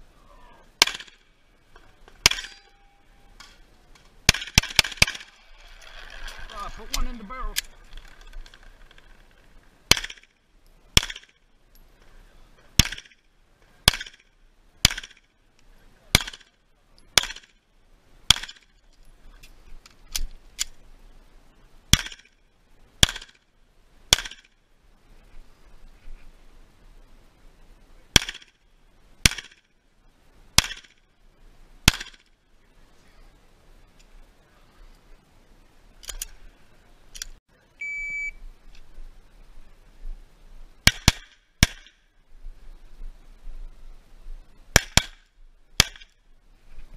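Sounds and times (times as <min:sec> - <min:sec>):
pistol shots: 0:00.8 - 0:01.2, 0:02.2 - 0:02.6, 0:09.9 - 0:10.3, 0:11.0 - 0:11.3, 0:12.8 - 0:13.1, 0:16.1 - 0:16.5, 0:17.2 - 0:17.5, 0:18.3 - 0:18.7, 0:23.0 - 0:23.4, 0:24.1 - 0:24.5, 0:28.1 - 0:28.5, 0:29.2 - 0:29.6, 0:30.6 - 0:30.9, 0:31.9 - 0:32.2, 0:40.8 - 0:42.0
short electronic beep: 0:37.8 - 0:38.4.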